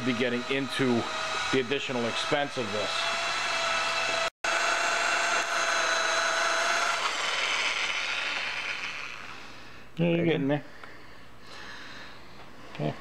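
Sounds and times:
electric drill whining: 0:00.0 - 0:09.6.

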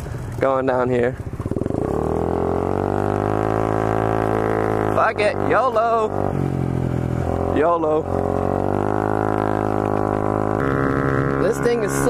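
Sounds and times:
scooter engine pulling away: 0:00.0 - 0:12.0.

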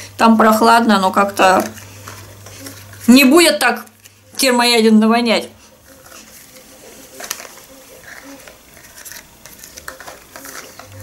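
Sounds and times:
soft handling rustles: 0:05.6 - 0:11.0.

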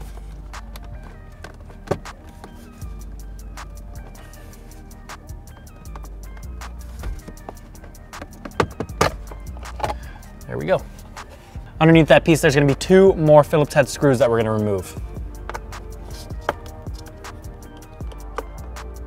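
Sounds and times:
background music with bass line: 0:00.0 - 0:19.0.

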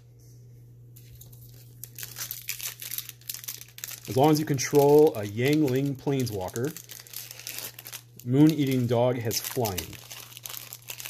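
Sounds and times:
wrapper crinkling and tearing: 0:01.2 - 0:11.0.

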